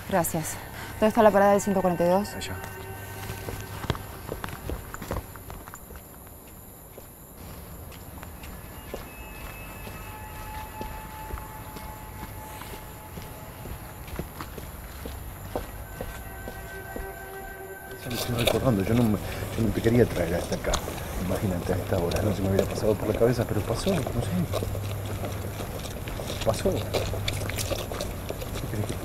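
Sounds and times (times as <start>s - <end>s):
low hum: 0.0s - 29.0s
footsteps on pavement: 2.6s - 29.0s.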